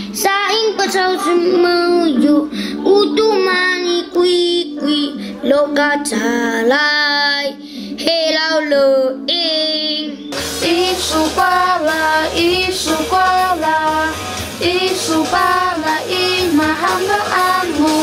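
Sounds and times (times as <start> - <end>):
child singing: 0.2 - 18.0
young female voices singing: 0.2 - 18.0
backing track with bass: 10.2 - 18.0.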